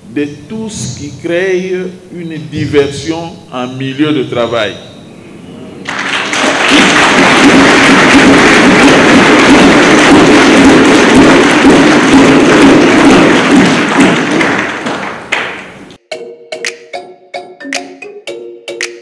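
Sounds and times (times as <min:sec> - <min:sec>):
large audience applauding: 0:05.8 - 0:15.8.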